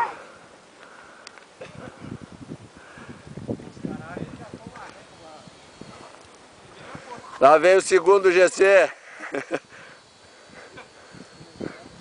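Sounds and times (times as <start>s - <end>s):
people laughing: 8.9s - 9.8s.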